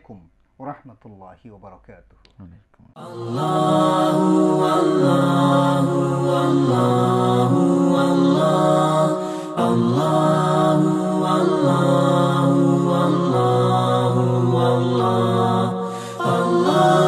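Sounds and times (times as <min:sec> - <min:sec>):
voices singing a slow chant: 0:03.0 - 0:17.0.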